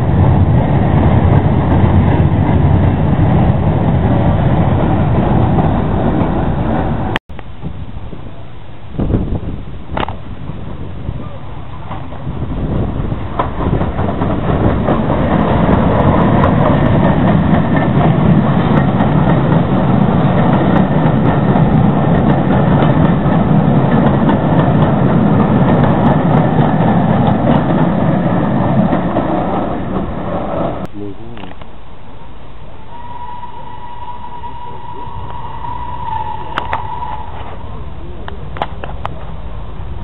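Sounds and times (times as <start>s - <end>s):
passenger train passing: 0.0s - 7.2s, 7.8s - 30.9s, 31.8s - 40.0s.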